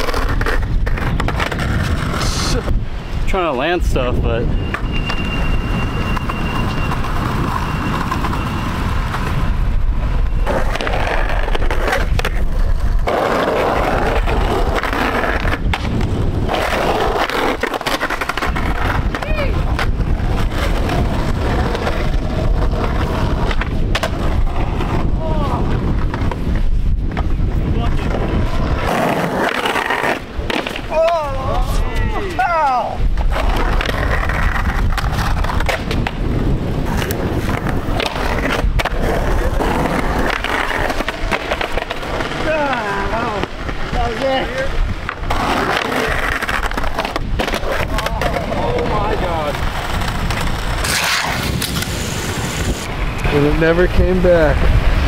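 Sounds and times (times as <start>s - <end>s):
skateboard clacking on pavement: 0.0s - 2.7s, 6.0s - 9.6s, 10.4s - 31.7s, 33.1s - 52.0s
skateboard trucks grinding curb: 0.0s - 55.0s
skateboard wheels rolling on concrete: 0.0s - 55.0s.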